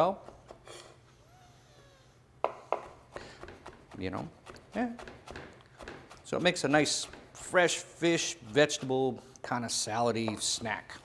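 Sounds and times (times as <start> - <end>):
knife chopping on wooden board: 2.5 - 7.6.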